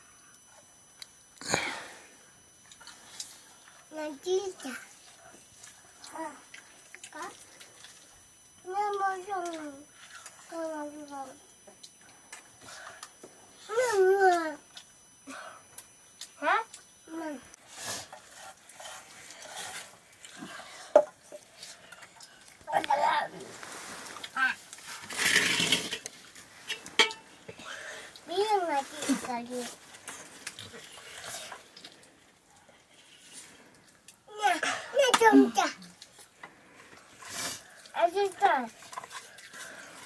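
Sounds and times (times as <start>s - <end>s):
spoons clinking steel bowls: 26.7s - 27.3s.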